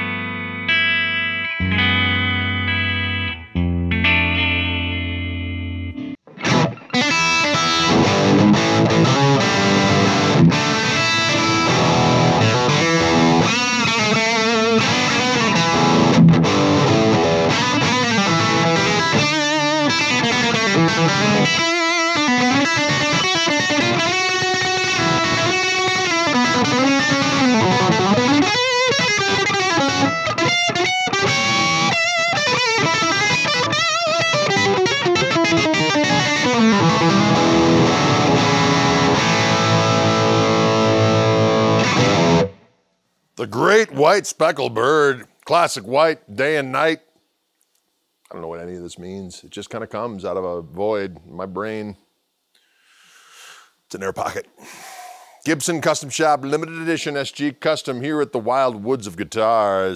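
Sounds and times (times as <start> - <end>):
electric guitar through amp: 0.0 - 42.7.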